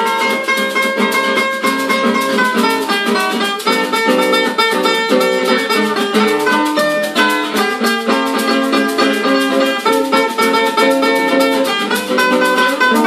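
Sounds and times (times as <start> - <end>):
acoustic guitar picking melody: 0.0 - 13.0
acoustic guitar strumming chords: 0.0 - 13.0
hand shaker rhythm: 0.0 - 13.0.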